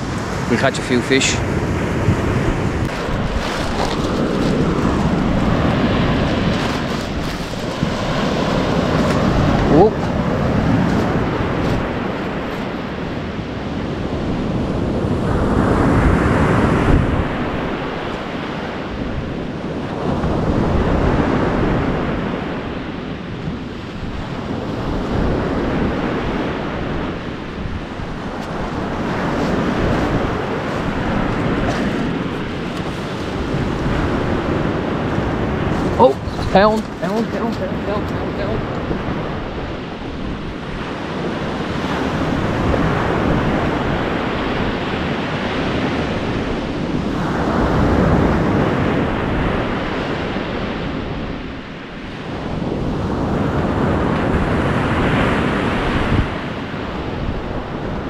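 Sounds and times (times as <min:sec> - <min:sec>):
surf breaking on pebble beach: 0:00.0 - 0:13.4, 0:27.9 - 0:38.7
wind buffeting microphone: 0:00.0 - 0:58.0.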